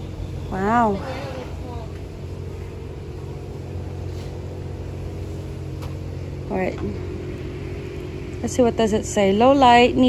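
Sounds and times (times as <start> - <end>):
low mechanical hum: 0.0 - 10.0
steady tones: 0.0 - 10.0.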